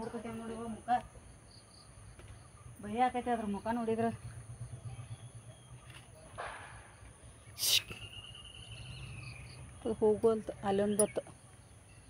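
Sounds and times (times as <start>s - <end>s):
woman speaking: 0.0s - 1.1s, 2.8s - 4.2s, 9.8s - 11.3s
insects droning: 0.0s - 12.0s.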